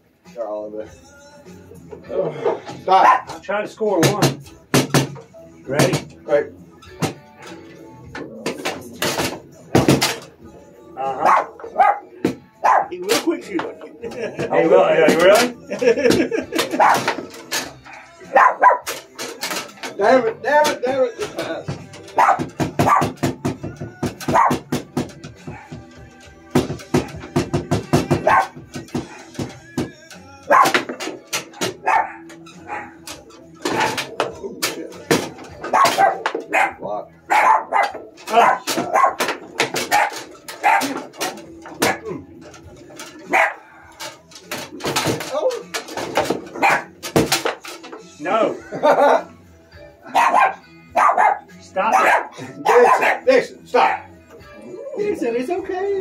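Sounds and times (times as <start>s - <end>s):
dog barking: 3.0s - 3.4s, 11.2s - 12.9s, 16.7s - 17.1s, 17.9s - 18.9s, 22.2s - 23.2s, 24.3s - 24.6s, 28.2s - 29.2s, 30.5s - 30.9s, 31.8s - 33.0s, 35.7s - 41.1s, 43.3s - 43.7s, 46.6s - 46.9s, 50.0s - 54.1s
foosball ball cracking: 30.5s - 36.6s, 37.3s - 48.0s.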